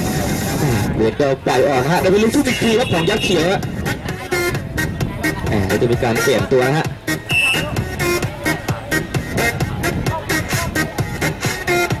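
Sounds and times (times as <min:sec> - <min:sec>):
background music with held notes: 0:00.0 - 0:12.0
man giving sports commentary: 0:00.6 - 0:03.6, 0:05.5 - 0:07.0.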